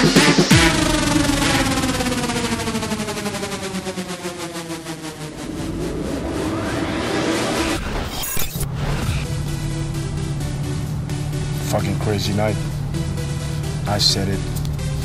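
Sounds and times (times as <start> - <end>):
pitch sweeps: 0.0 - 13.9
electronic dance music: 0.0 - 15.0.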